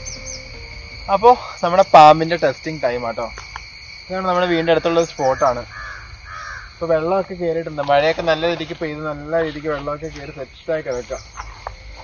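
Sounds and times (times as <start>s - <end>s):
crow cawing: 4.8s - 6.8s.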